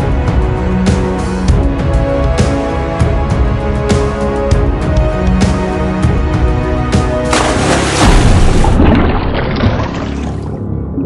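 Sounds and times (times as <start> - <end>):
background music: 0.0 - 11.0
splash into pool: 7.3 - 10.5.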